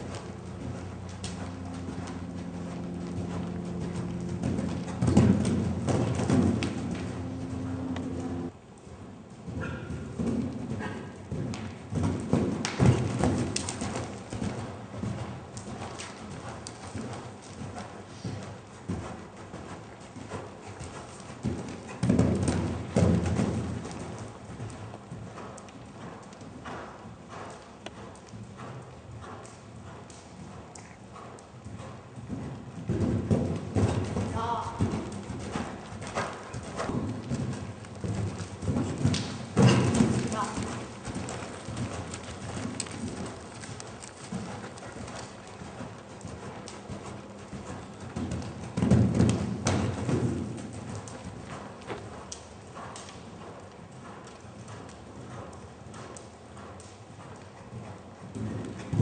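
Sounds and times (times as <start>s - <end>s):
horse hoofbeats on sand: 0.0s - 59.0s.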